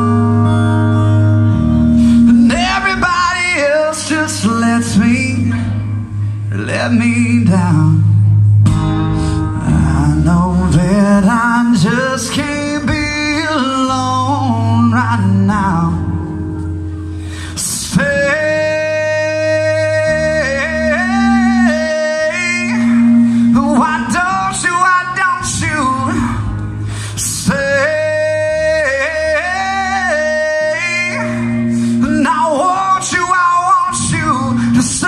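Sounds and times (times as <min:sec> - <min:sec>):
strummed acoustic guitar: 0:00.0 - 0:35.0
man singing: 0:02.2 - 0:08.6, 0:09.5 - 0:16.7, 0:17.4 - 0:35.0.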